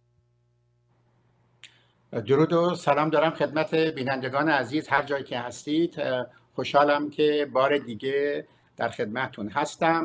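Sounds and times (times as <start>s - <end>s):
faint low electrical hum: 0.0s - 10.0s.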